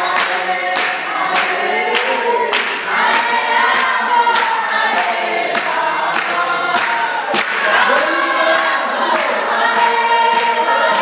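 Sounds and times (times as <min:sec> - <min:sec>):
hand claps: 0:00.0 - 0:11.0
hand cymbals: 0:00.0 - 0:11.0
voices chanting together: 0:00.0 - 0:11.0.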